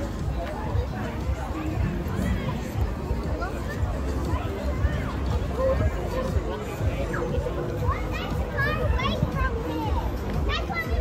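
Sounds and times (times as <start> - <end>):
street crowd chatter: 0.0 - 11.0
children's high voices: 4.6 - 11.0.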